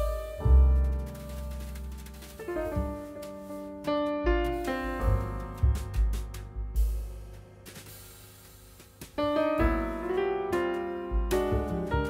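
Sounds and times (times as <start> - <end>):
slow piano music: 0.0 - 12.0.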